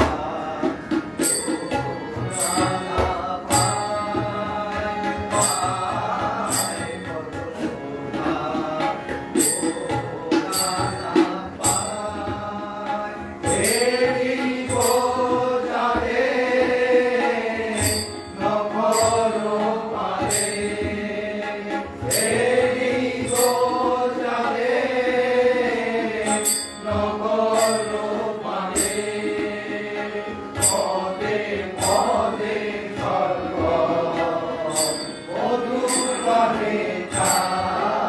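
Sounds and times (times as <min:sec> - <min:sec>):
group singing a devotional chant: 0:00.0 - 0:38.0
bright metallic strikes: 0:01.2 - 0:04.4, 0:34.1 - 0:38.0.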